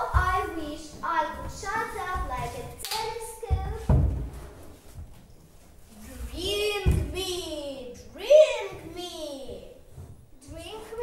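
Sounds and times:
dull thuds echoing: 0.0 - 4.4.

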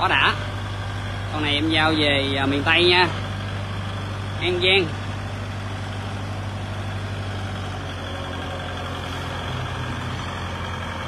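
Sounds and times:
tractor diesel engine idling: 0.0 - 11.0.

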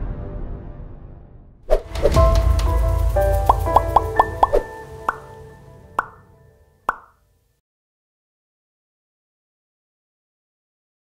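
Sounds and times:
jingle music: 2.1 - 6.4
bubbly pop sound effects: 3.5 - 5.3, 6.0 - 6.2, 6.9 - 7.1.

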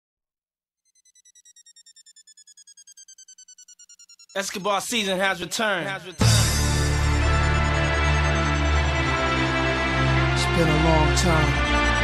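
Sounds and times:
high pulsing electronic tone: 0.8 - 10.6.

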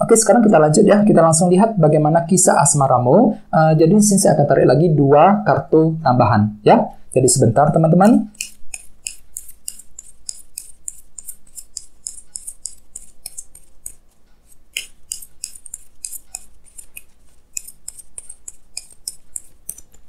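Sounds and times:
cards being shuffled by hand: 8.1 - 20.0.

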